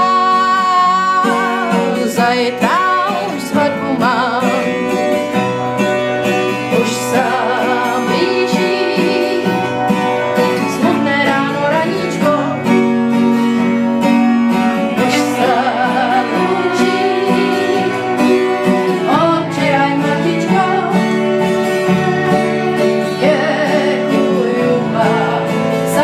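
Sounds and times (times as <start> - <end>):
woman singing: 0.0 - 5.5, 6.4 - 13.0, 14.8 - 26.0
acoustic guitar strumming: 0.0 - 26.0
fiddle: 0.0 - 26.0.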